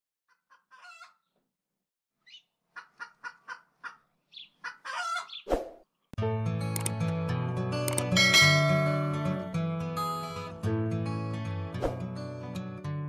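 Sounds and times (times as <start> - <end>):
chicken squawk: 0.3 - 1.3, 2.2 - 5.5
chicken clucking: 0.3 - 1.4, 2.2 - 5.5.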